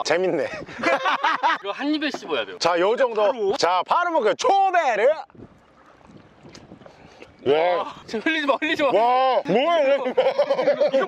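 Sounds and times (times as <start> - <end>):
light wind on microphone: 5.2 - 9.0.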